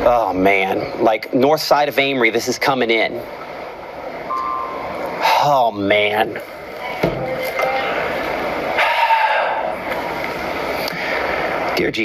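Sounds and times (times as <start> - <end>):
television hiss: 0.0 - 12.0.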